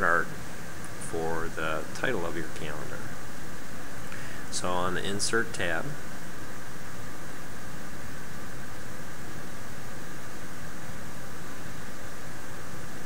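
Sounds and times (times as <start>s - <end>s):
steady background hiss: 0.0s - 13.0s.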